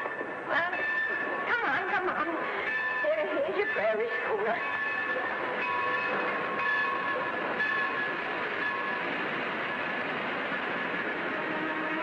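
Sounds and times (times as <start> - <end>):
train rushing rumble: 0.0 - 12.0.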